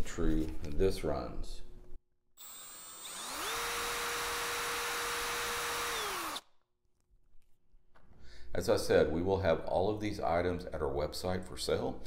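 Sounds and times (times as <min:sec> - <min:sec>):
power drill motor whine: 0:02.4 - 0:06.5.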